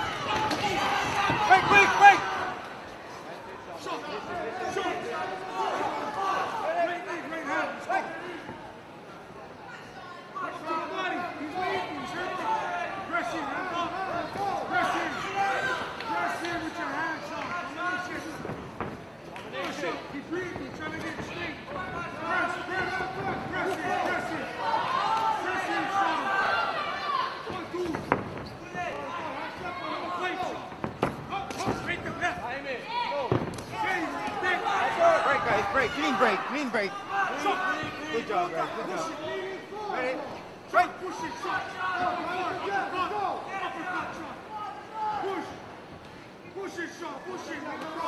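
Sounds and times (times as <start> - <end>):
crowd shouting: 0.0 - 2.8, 21.3 - 27.9, 28.6 - 45.6.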